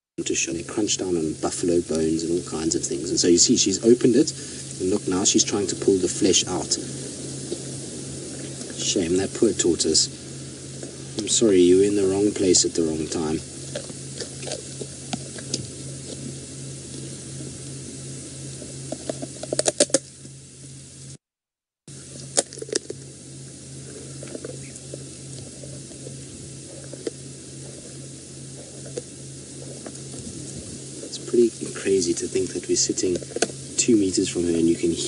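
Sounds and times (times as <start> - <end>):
steady low hum: 0.2 - 21.2, 21.9 - 35.0
lioness crunching shell: 13.6 - 16.4, 18.9 - 20.1, 22.1 - 30.4.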